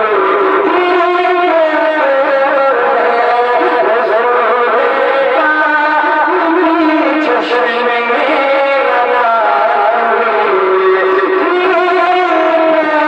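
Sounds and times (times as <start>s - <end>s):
man singing into a microphone: 0.0s - 13.0s.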